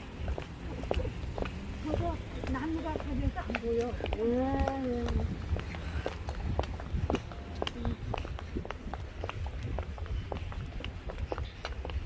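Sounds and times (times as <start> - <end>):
footsteps on pavement: 0.0 - 12.0.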